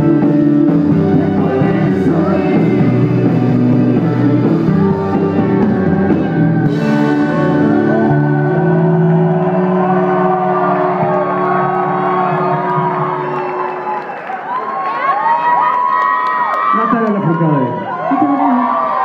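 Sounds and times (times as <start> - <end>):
rock band final chord: 0.0 - 13.8
crowd cheering and whistling: 4.0 - 19.0.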